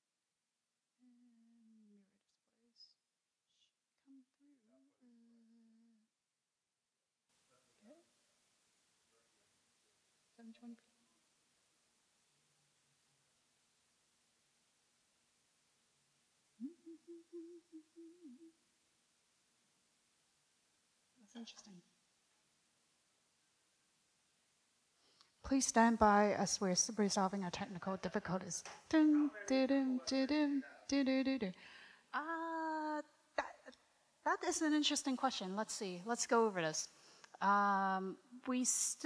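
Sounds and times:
person humming: 0:01.0 - 0:02.2, 0:04.0 - 0:06.0, 0:16.6 - 0:18.6.

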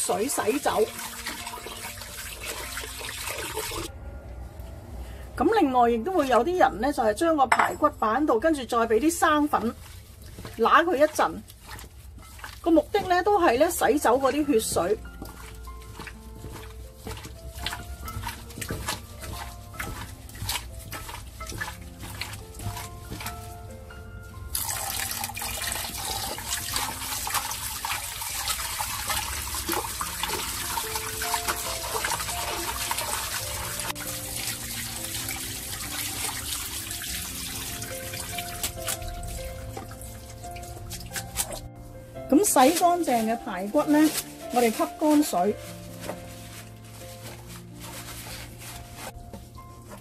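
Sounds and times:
hands rubbing meat in water: 0:00.0 - 0:03.9, 0:08.4 - 0:50.0
water running from tap: 0:00.0 - 0:03.9, 0:08.6 - 0:23.5, 0:24.4 - 0:41.7
soft background melody: 0:00.0 - 0:50.0.

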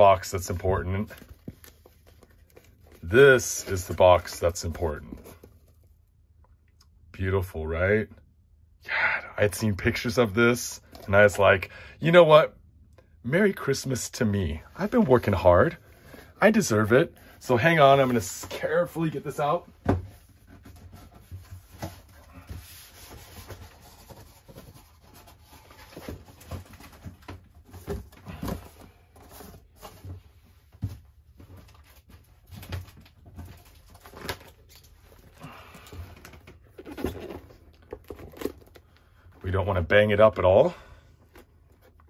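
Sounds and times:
cardboard scraping and rustling: 0:17.8 - 0:35.4, 0:36.1 - 0:38.8.

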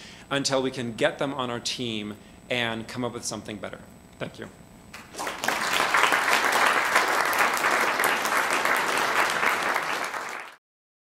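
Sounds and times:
audience applauding: 0:05.0 - 0:10.6.

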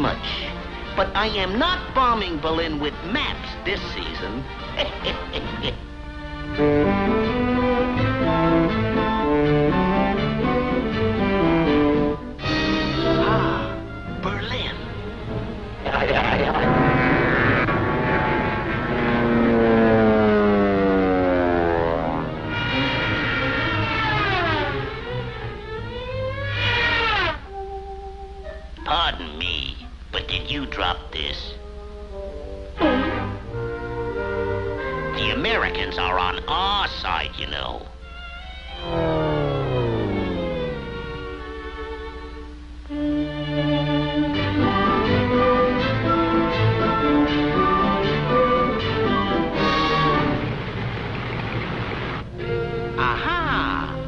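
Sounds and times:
cartoon soundtrack music: 0:00.0 - 0:50.9, 0:52.2 - 0:54.0
falling pitch glide sound effect: 0:16.4 - 0:25.3, 0:38.4 - 0:42.4.

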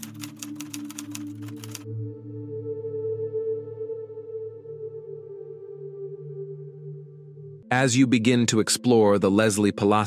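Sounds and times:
typewriter key clicks: 0:00.0 - 0:01.8
ambient music drone: 0:00.0 - 0:07.7.

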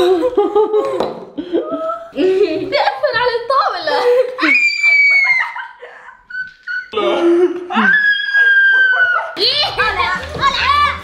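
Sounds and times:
children laughing and shrieking: 0:03.8 - 0:07.0, 0:07.6 - 0:11.0
background music with steady beat: 0:09.4 - 0:11.0.

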